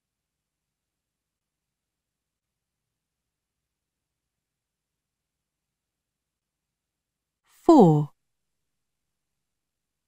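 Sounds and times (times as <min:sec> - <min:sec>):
person speaking a word: 0:07.7 - 0:08.1.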